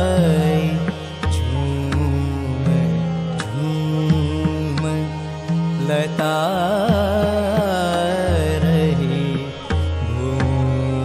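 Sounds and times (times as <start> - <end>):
devotional melodic line with gliding notes: 0.0 - 11.0.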